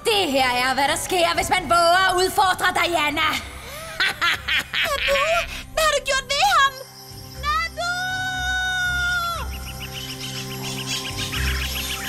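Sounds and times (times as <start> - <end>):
music: 0.0 - 12.0
cartoon jungle birds calling: 6.4 - 12.0
rapid bird chirping: 9.4 - 12.0.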